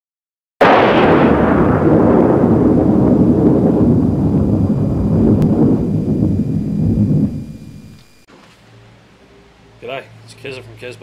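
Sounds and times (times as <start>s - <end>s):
loud rumbling boom: 0.6s - 8.3s.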